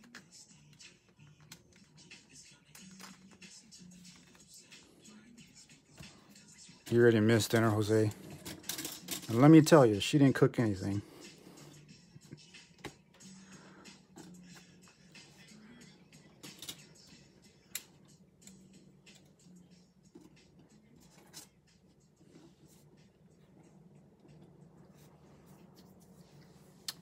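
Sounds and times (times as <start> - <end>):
trading cards and plastic stands clicking: 7.5 - 9.6, 16.4 - 17.1.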